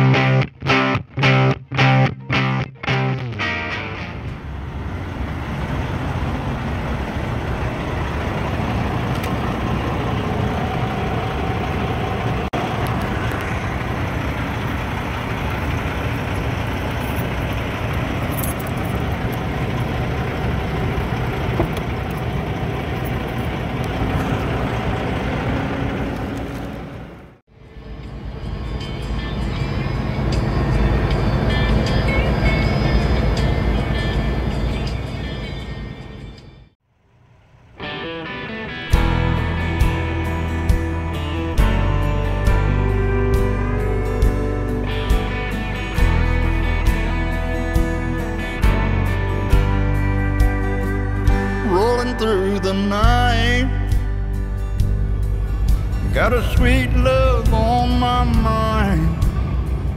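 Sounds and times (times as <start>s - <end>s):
road noise: 0.0s - 59.9s
diesel truck engine rumble: 2.3s - 59.9s.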